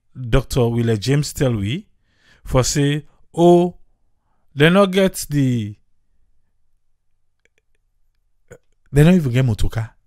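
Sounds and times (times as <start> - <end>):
man's voice: 0.2 - 1.9, 2.5 - 3.8, 4.6 - 5.8, 9.0 - 10.0.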